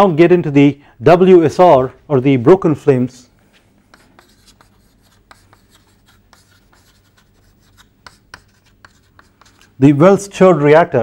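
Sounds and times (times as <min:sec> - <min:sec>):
chalk writing on blackboard: 0:03.6 - 0:09.8.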